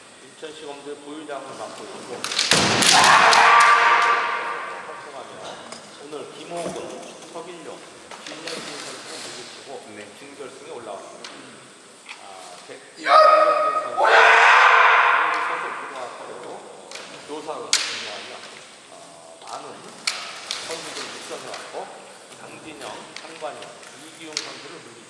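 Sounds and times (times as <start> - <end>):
sharp crack: 2.2 - 5.3, 14.0 - 17.1
long loud yell: 2.8 - 5.1, 13.0 - 16.2
person shouting: 2.9 - 5.1, 13.0 - 15.9.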